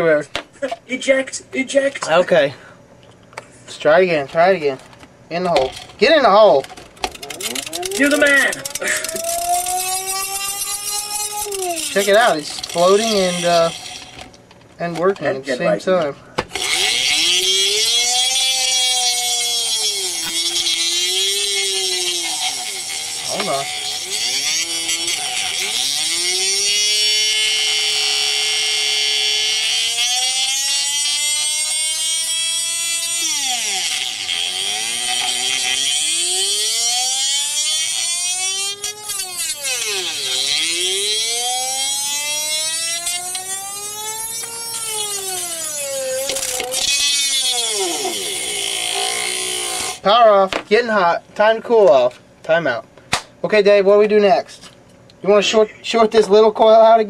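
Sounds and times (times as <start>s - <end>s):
motor whining: 5.6s - 14.6s, 16.4s - 50.0s.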